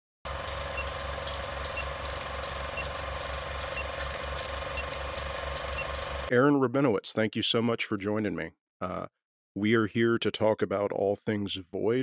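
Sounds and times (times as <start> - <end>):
steady hum with low pulse: 0.3 - 6.3.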